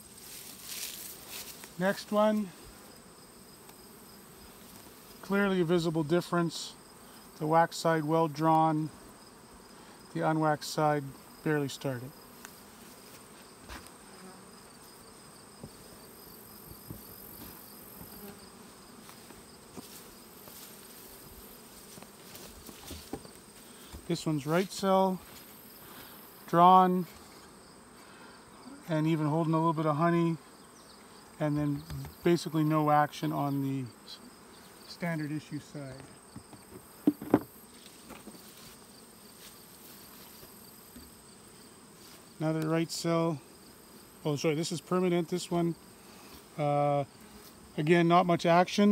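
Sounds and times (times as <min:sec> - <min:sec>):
honey bees humming: 0:00.0 - 0:48.9
knocks on wooden hive boxes: 0:15.6 - 0:15.8, 0:16.6 - 0:18.4, 0:22.0 - 0:24.1, 0:31.8 - 0:32.3, 0:36.0 - 0:38.4.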